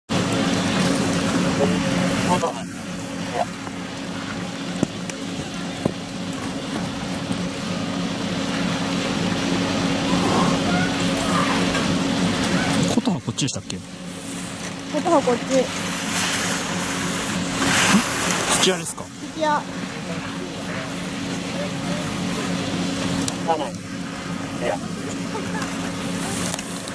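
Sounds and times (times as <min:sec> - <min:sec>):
low machine hum: 0:00.1 - 0:26.9
skis scraping over hard snow: 0:14.2 - 0:18.9
hiss of noise: 0:15.5 - 0:18.9.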